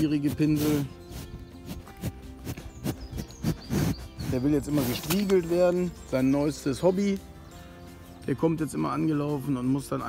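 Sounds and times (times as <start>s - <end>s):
quiet background music: 0.0s - 10.0s
bull breathing into microphone: 0.3s - 5.2s.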